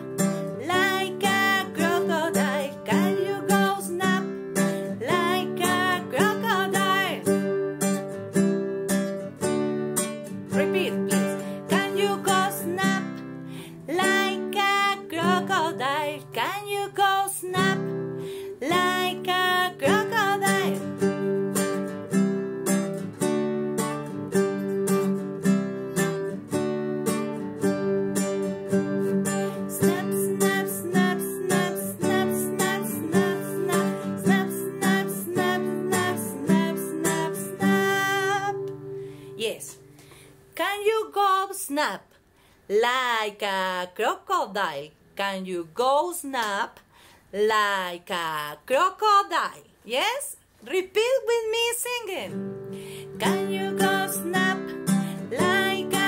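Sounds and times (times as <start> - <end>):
woman singing: 0.0 - 7.8, 10.5 - 21.6, 29.0 - 39.8, 40.6 - 42.1, 42.7 - 56.0
acoustic guitar strumming: 0.0 - 40.2, 52.3 - 56.0.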